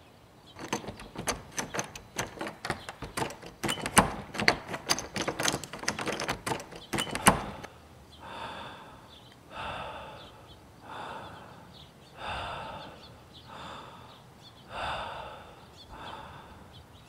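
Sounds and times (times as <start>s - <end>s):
doorknob and lock rattling: 0.6s - 7.7s
knocks on door: 0.6s - 7.7s.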